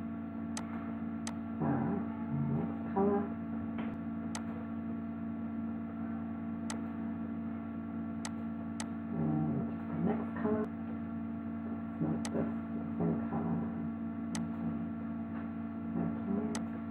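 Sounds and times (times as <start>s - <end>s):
electrical mains hum: 0.0s - 16.9s.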